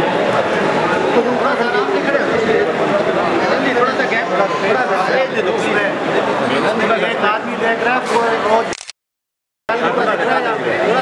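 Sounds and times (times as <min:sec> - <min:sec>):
men talking in a crowd: 0:00.0 - 0:08.7, 0:09.7 - 0:11.0.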